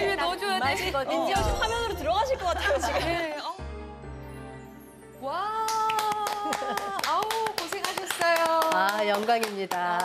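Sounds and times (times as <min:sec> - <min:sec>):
music: 0:00.0 - 0:10.0
people clapping: 0:05.6 - 0:10.0.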